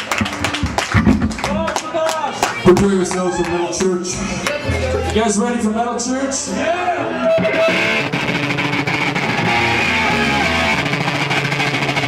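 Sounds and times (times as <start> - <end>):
drum and cymbal hits: 0.0 - 1.8
electric guitar notes: 7.1 - 12.0.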